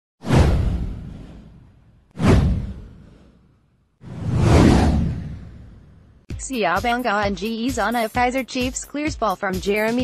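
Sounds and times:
downward whoosh: 4.0 - 6.0.

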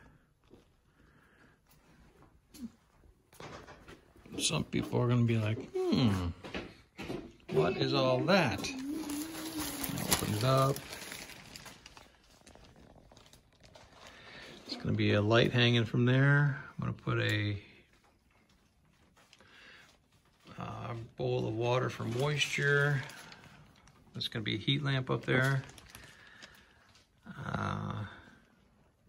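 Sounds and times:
plastic sheeting crinkling: 7.8 - 28.5.

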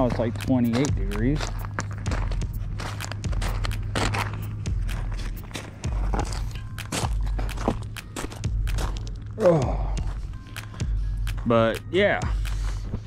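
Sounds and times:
footsteps crunching on gravel: 0.0 - 9.4
steady low rumble: 0.0 - 13.0.

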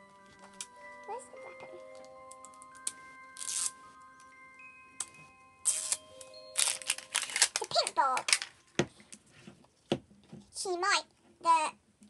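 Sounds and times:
background music of held notes: 0.0 - 8.8
plastic wrapping crinkling and tearing: 2.8 - 3.8, 5.6 - 8.7.

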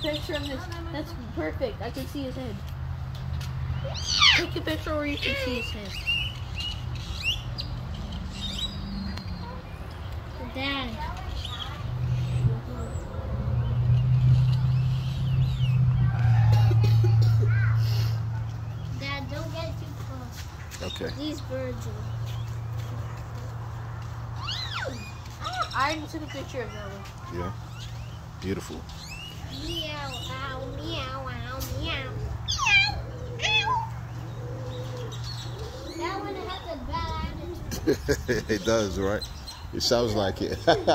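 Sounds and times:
chirping bird calls: 3.7 - 16.8, 24.4 - 40.9
pigeon cooing: 31.7 - 36.7.

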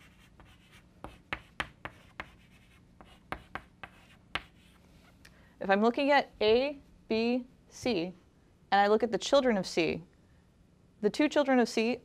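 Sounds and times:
chalk tapping and scratching: 0.0 - 4.8.

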